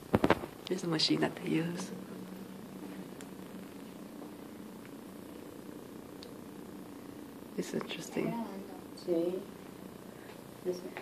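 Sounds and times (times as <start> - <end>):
low room hum: 0.0 - 11.0
faint pitched drone: 0.7 - 11.0.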